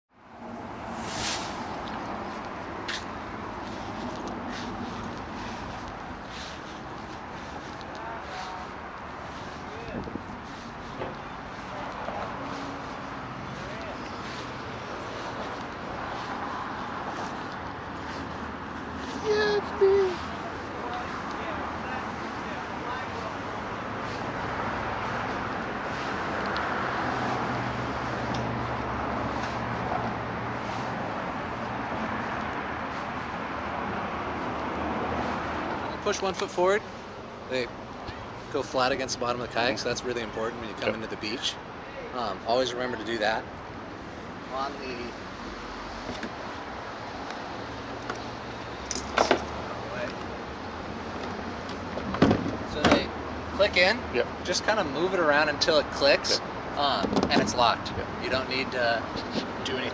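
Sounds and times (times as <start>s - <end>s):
cars passing: 0.1s - 59.9s
outdoor background noise: 0.1s - 59.9s.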